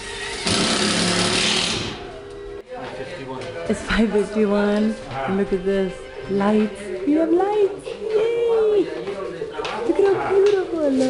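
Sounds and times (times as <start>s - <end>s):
handheld power tool buzzing: 0.0s - 2.1s.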